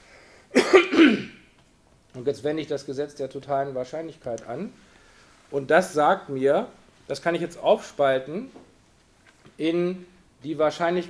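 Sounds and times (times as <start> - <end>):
man clearing his throat: 0.5 - 1.5.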